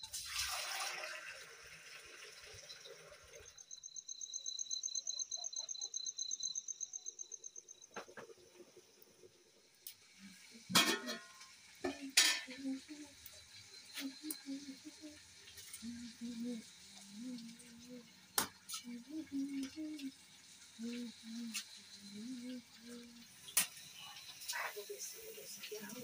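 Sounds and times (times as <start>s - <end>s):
food sizzling: 0.0s - 3.9s, 7.0s - 26.0s
metal spoon scraping a pan: 10.7s - 12.6s.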